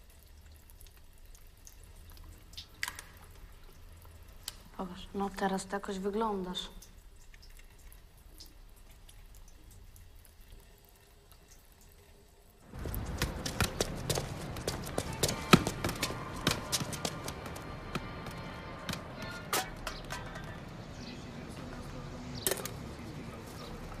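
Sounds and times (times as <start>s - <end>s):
faint music: 12.0s - 24.0s
football kicked and bouncing on asphalt: 12.7s - 20.6s.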